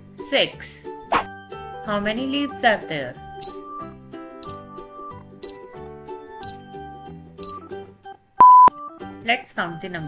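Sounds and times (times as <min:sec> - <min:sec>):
light background music: 0:00.0 - 0:03.6, 0:08.9 - 0:10.0.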